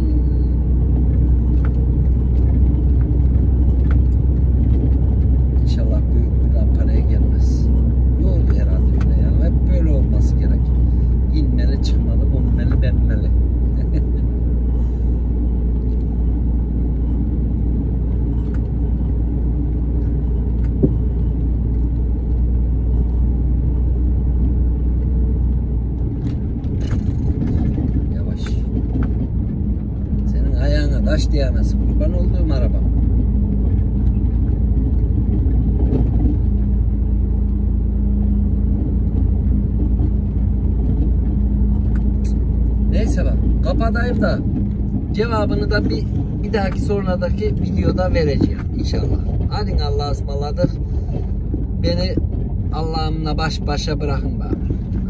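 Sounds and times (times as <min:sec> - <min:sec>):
lorry engine and road drone: 0:00.0 - 0:55.0
short rattles and knocks: 0:25.9 - 0:55.0.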